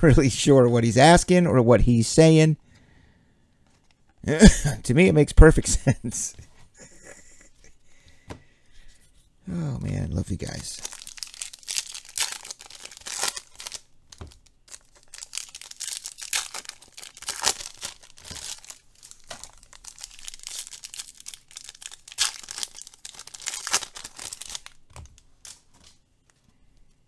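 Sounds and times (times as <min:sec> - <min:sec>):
wrapper tearing and crinkling: 0:10.5 - 0:26.0.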